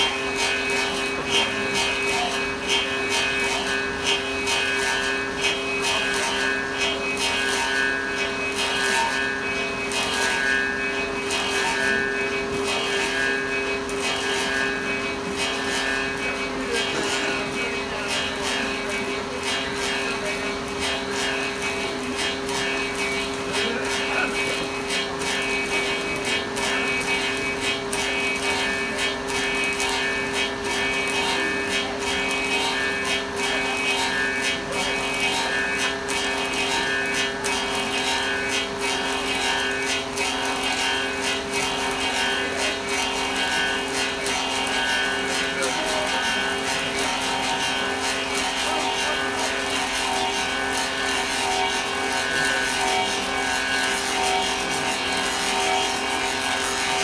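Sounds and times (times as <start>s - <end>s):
lathe humming: 0.0s - 57.0s
rapid chatter of wood cutting: 0.0s - 57.0s.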